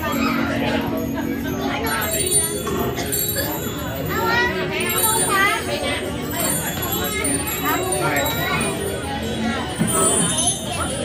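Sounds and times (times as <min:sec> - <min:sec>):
young children talking and calling: 0:00.0 - 0:11.0.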